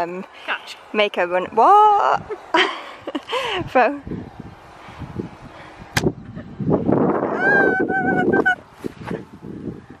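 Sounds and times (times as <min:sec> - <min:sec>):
woman squealing: 0:07.3 - 0:08.6.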